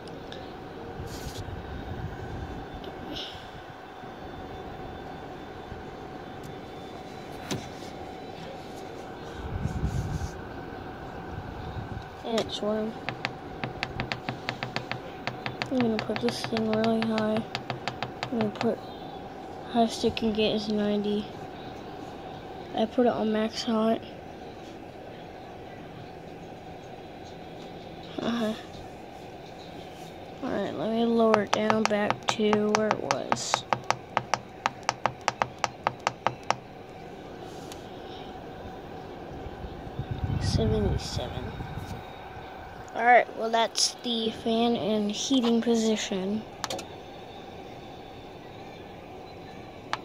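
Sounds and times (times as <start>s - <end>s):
fan running steadily: 0.0s - 50.0s.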